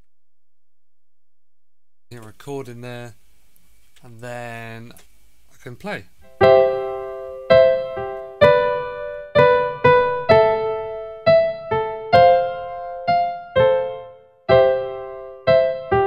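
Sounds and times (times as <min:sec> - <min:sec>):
piano block chords: 0:06.2 - 0:16.0.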